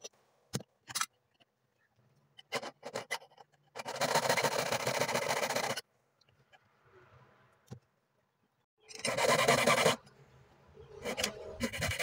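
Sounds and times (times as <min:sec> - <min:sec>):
saw cutting through thin sheet: 0:11.0 - 0:12.0.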